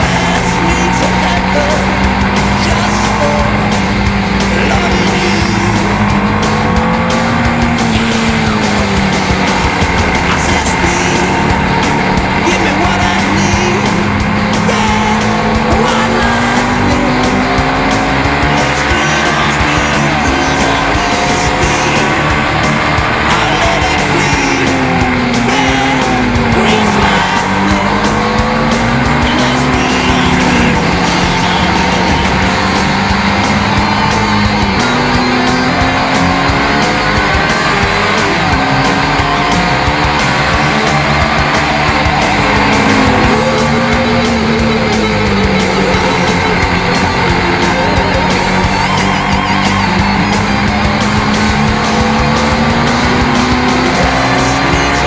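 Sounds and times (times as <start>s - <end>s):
background music: 0.0s - 55.0s
motorcycle engine at high revs: 0.0s - 55.0s.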